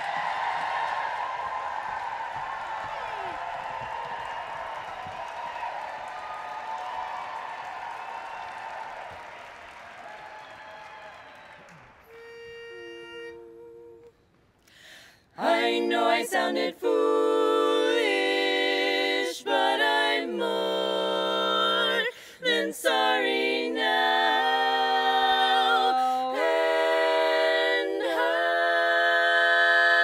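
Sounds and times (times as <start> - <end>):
audience applause and cheering: 0.0 - 13.0.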